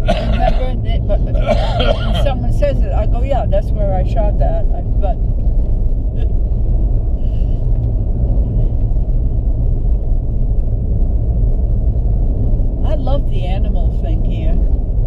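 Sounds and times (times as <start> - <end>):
car engine rumble: 0.0 - 15.0
tyre noise on road: 0.0 - 15.0.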